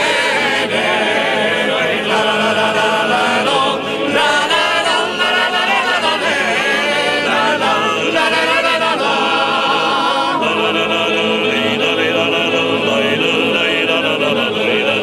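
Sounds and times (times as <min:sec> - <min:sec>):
men singing unaccompanied polyphony: 0:00.0 - 0:15.0.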